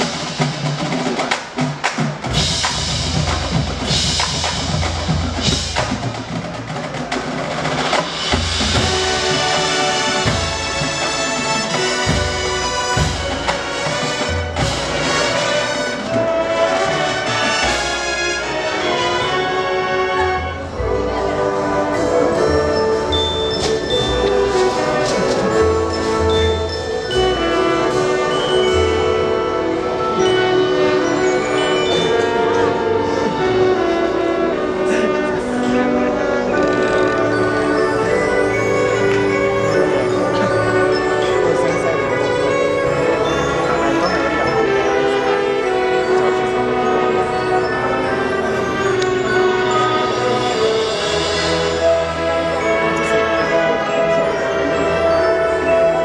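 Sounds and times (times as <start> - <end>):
marching band brass chords: 0.0 - 56.0.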